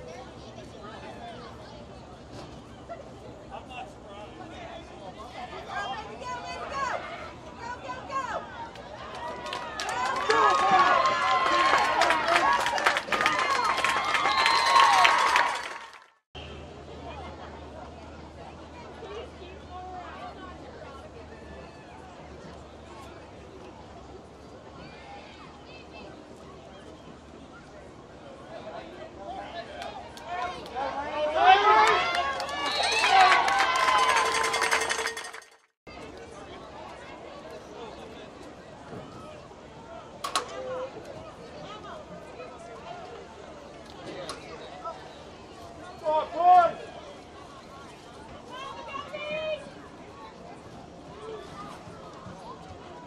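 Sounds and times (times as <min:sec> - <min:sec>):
spectators shouting and cheering: 0:06.6 - 0:16.0, 0:29.6 - 0:35.3.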